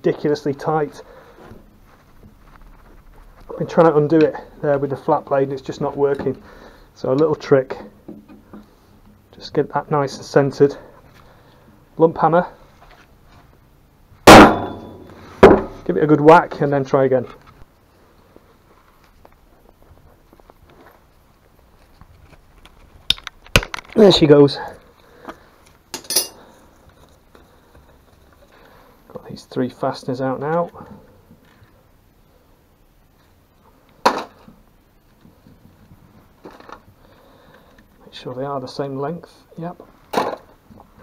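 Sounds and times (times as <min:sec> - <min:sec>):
sharp metallic impacts: 0:14.2 - 0:15.9
quiet tool handling: 0:25.2 - 0:27.2
metal parts knocking on workbench: 0:26.0 - 0:26.4.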